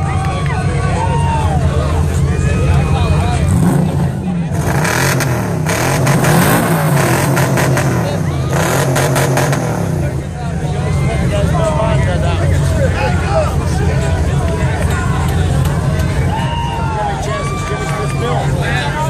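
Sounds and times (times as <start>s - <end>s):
spectators whooping and shouting: 0.0s - 3.7s, 7.9s - 9.0s, 10.4s - 19.0s
engine revving hard: 3.1s - 10.5s.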